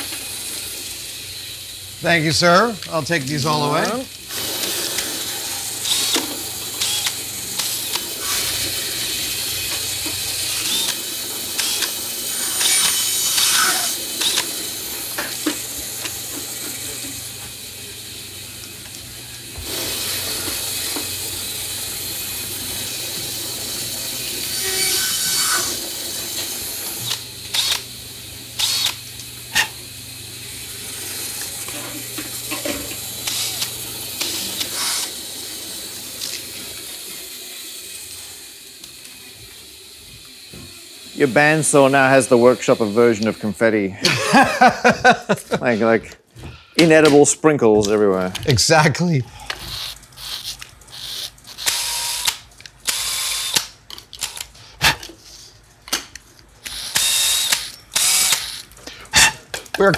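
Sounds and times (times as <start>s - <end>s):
bandsaw humming: 0.0s - 46.0s
cordless drill whirring: 3.7s - 27.9s, 28.6s - 29.7s, 32.6s - 35.4s, 49.5s - 54.5s, 56.6s - 58.7s.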